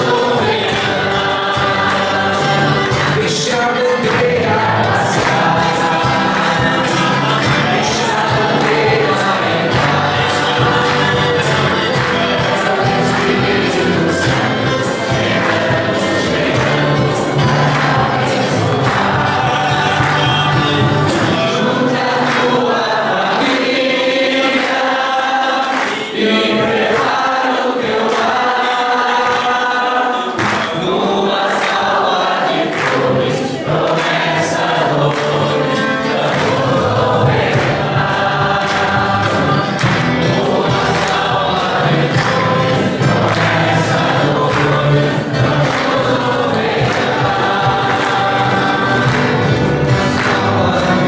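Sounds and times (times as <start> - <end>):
congregation singing a hymn: 0.0 - 51.0.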